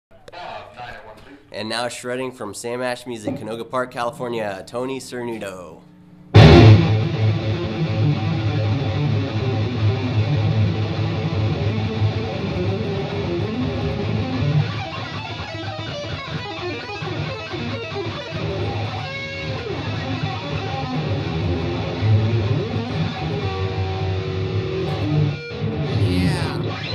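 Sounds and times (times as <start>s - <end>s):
fast electric guitar solo: 6.4s - 26.9s.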